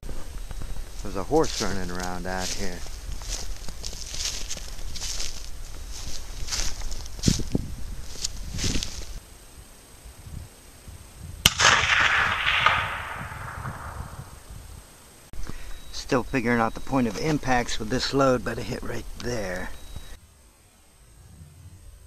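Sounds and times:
footsteps crunching in snow: 0.0s - 9.2s, 16.6s - 20.2s
rifle shot with echo: 11.4s - 14.4s.

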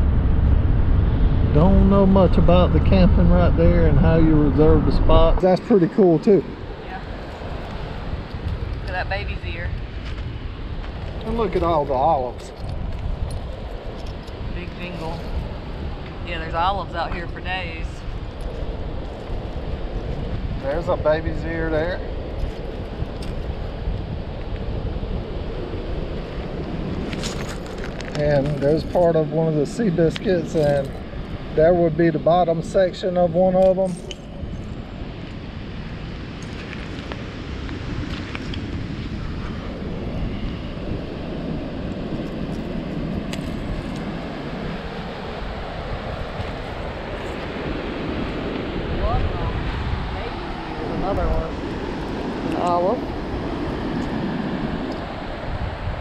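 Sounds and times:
ocean surf rushing: 0.0s - 56.0s
wind buffeting microphone: 0.0s - 56.0s.

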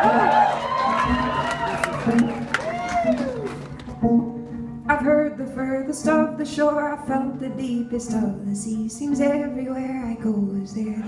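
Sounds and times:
held string notes: 0.0s - 11.0s
person singing: 4.9s - 11.0s.

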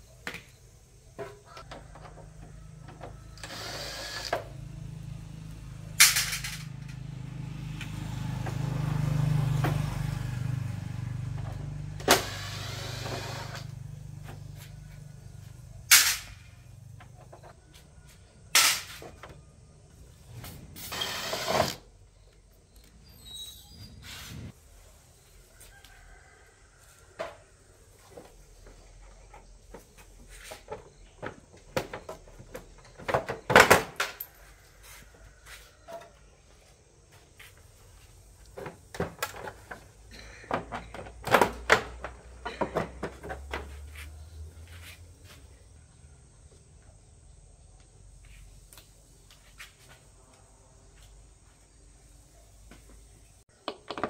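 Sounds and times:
low engine hum: 4.4s - 15.9s
metal clinks and knocks: 41.9s - 43.6s.

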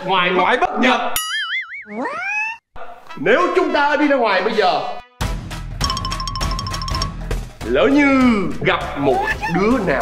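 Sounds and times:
cartoon boing: 1.2s - 2.6s.

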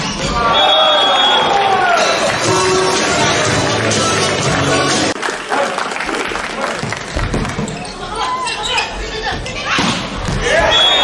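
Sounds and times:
crowd voices: 0.0s - 11.0s
short high whistle: 10.7s - 11.0s.

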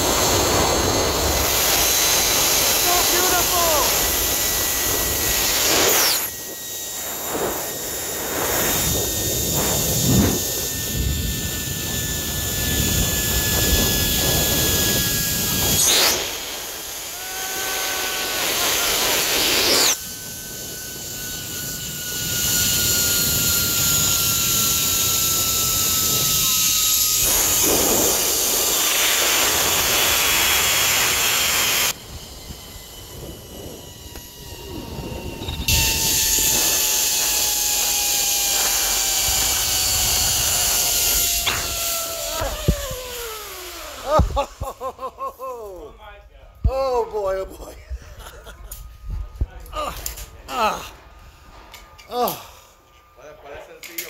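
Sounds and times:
wind rushing on microphone: 0.0s - 44.7s
zipline pulleys whining on cable: 0.0s - 54.0s.

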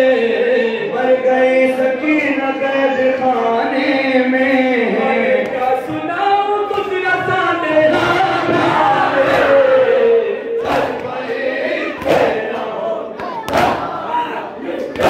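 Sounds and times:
men chanting a lament: 0.0s - 15.0s
crowd joining in chanting: 7.5s - 15.0s
loud sharp chest beats: 13.2s - 14.0s.

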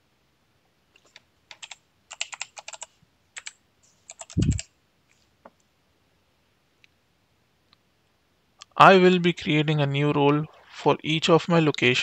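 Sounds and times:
computer keyboard typing: 1.0s - 4.7s.

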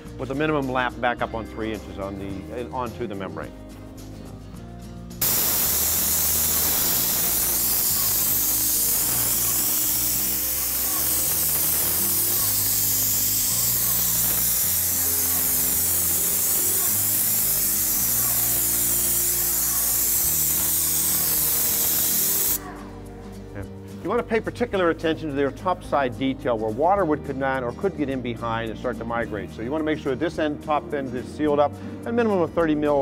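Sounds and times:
spray gun hissing: 5.2s - 22.7s.

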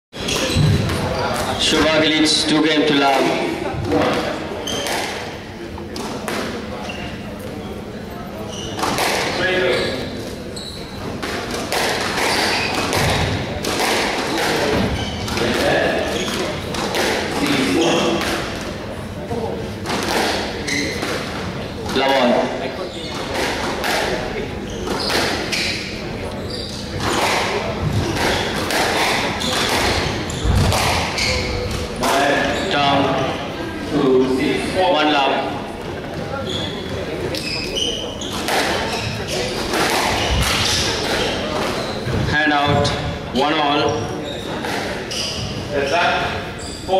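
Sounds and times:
murmur of voices: 0.1s - 46.9s
squash ball hits: 3.8s - 5.3s, 8.8s - 9.6s, 11.2s - 18.7s, 19.8s - 22.3s, 23.2s - 24.2s, 24.8s - 25.5s, 27.0s - 32.4s, 38.3s - 38.9s, 39.5s - 42.9s.

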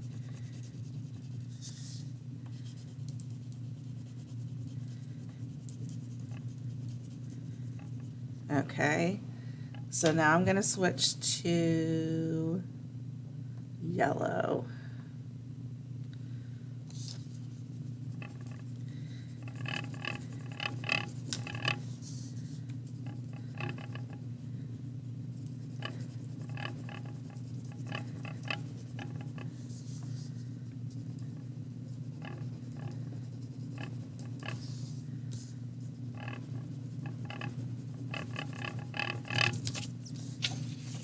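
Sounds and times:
steady low hum: 0.0s - 41.0s
wax crayon scratching on paper: 0.1s - 1.9s, 2.6s - 8.1s, 17.8s - 18.7s, 19.3s - 22.3s, 22.9s - 24.2s, 24.8s - 30.3s, 31.0s - 35.0s, 36.0s - 40.0s.

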